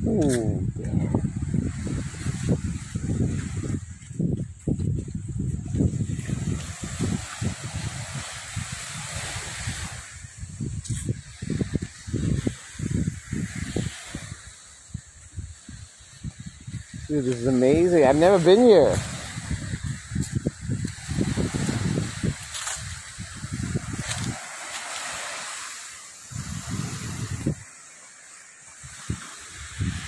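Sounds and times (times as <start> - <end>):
wind buffeting microphone: 0.0 - 27.8, 28.7 - 30.0
waves washing onto beach: 0.0 - 30.0.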